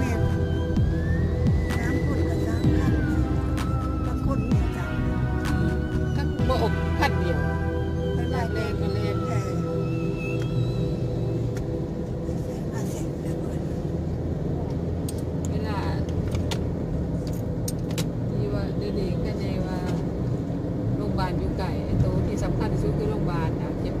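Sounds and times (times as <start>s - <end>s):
car engine and tyre rumble: 0.0s - 24.0s.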